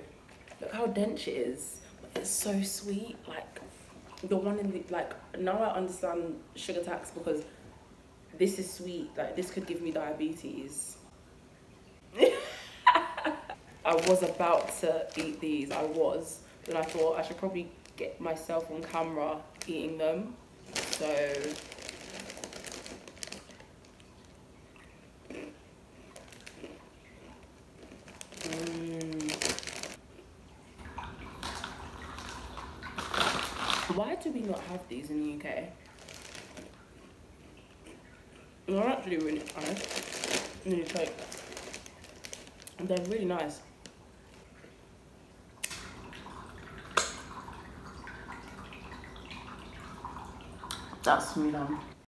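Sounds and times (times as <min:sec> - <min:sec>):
plastic bag crinkling: 0:12.2 - 0:30.0, 0:31.4 - 0:37.1, 0:38.7 - 0:44.6
wet chewing mouth sounds: 0:25.2 - 0:28.9.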